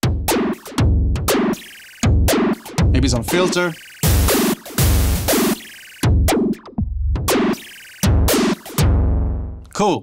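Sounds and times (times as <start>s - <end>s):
noisy synth snare hits: 0.0s - 9.1s
synth kick thumps: 0.0s - 9.6s.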